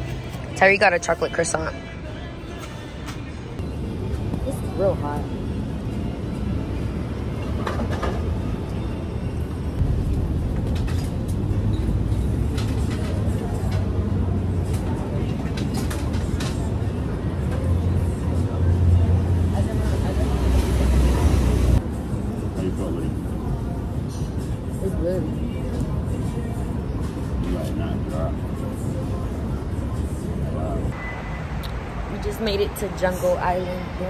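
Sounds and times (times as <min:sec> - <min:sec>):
passing traffic rumble: 0:03.6 - 0:27.4, 0:28.0 - 0:34.0.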